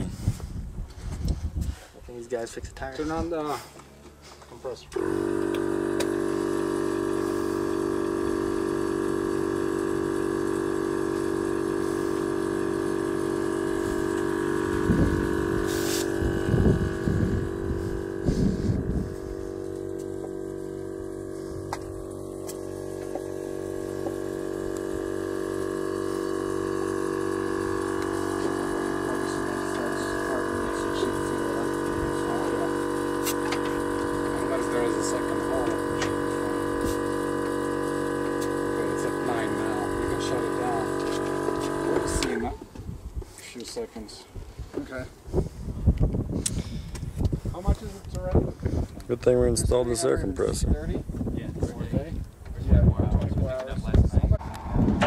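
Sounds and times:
air compressor droning hum: 0.0s - 55.0s.

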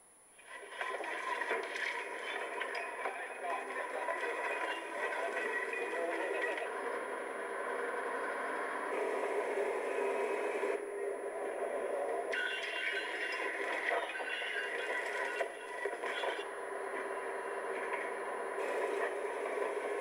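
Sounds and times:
logging machinery: 0.5s - 10.8s, 12.3s - 20.0s.

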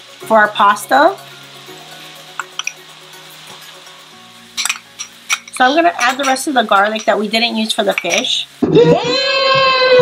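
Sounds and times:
garlic sizzling in hot pan: 0.0s - 9.9s
sauce sizzling in pan: 0.0s - 10.0s
soft background music: 0.0s - 10.0s.

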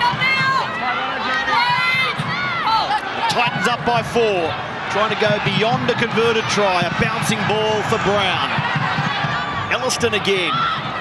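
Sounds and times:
murmur of stadium crowd: 0.0s - 11.0s.

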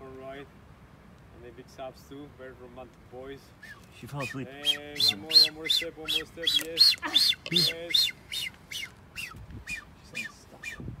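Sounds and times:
bird whistling calls: 3.5s - 11.0s.

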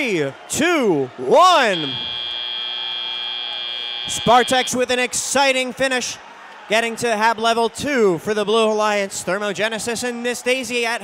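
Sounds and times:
buzzer long steady tone: 1.5s - 5.1s.

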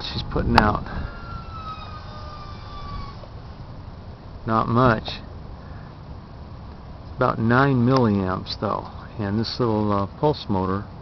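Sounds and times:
background hiss: 0.0s - 11.0s
distant siren wailing: 0.9s - 3.3s.

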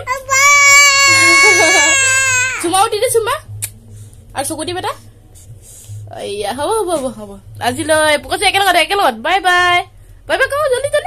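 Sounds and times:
toddler squealing: 0.0s - 2.7s.

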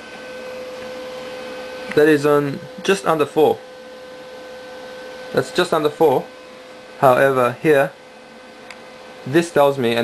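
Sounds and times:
steady hum and hiss: 0.0s - 10.0s.

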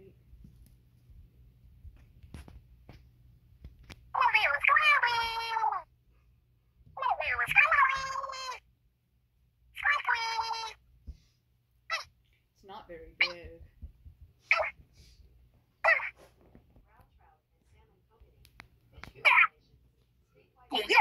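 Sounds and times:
squeaky character voice calling: 4.2s - 5.9s, 7.0s - 8.6s, 9.8s - 10.8s, 11.9s - 12.1s, 14.5s - 14.8s, 15.8s - 16.2s, 19.2s - 19.5s.

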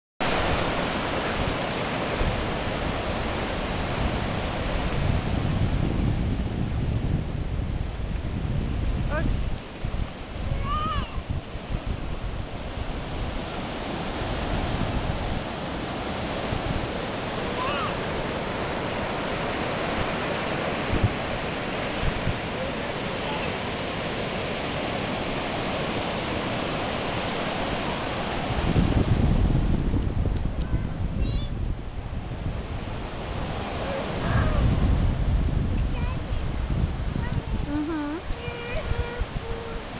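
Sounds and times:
ocean surf on sandy beach: 0.2s - 39.9s
wind rumble on microphone: 0.2s - 39.9s.

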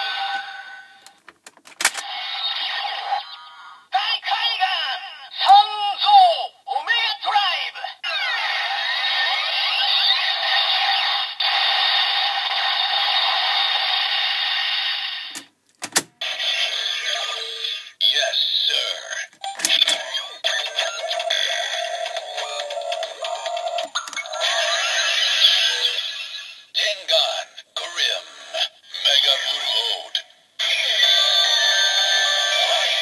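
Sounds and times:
plastic clicks: 1.0s - 2.0s
toy voice calls: 2.0s - 11.4s, 16.2s - 33.0s
toy belt electronic music: 19.4s - 26.3s.

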